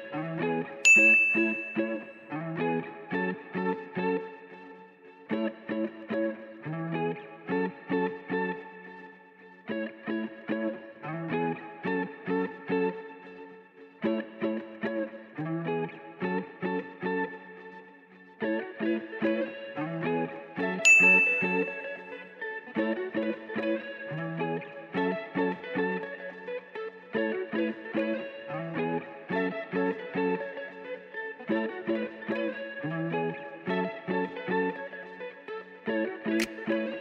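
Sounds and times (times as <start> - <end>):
plucked guitar melody: 0.0 - 37.0
bright chime: 0.9 - 2.1, 20.9 - 22.1.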